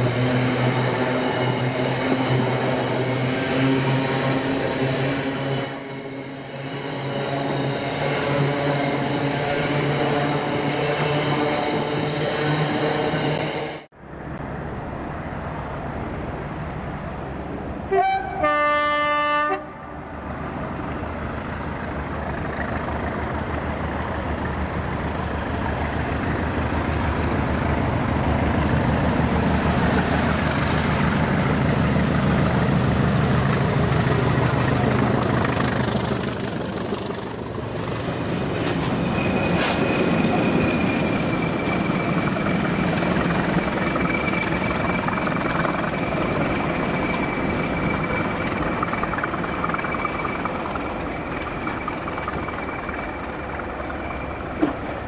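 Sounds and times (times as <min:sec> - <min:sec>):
diesel locomotive engines: 0:00.0 - 0:55.0
locomotive horn: 0:17.9 - 0:20.0.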